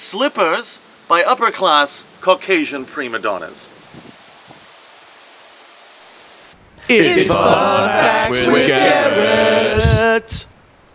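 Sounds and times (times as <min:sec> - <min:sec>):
faint outdoor background hiss: 0:00.0 - 0:10.9.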